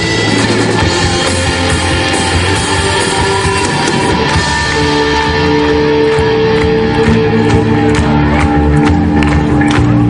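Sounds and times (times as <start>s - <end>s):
live rock band playing: 0.0s - 10.0s
long held guitar notes: 0.0s - 10.0s.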